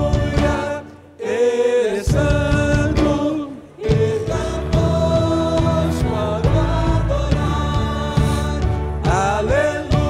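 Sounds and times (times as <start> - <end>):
drum strikes: 0.0 - 0.9, 2.0 - 10.0
worship band and singers: 0.0 - 10.0.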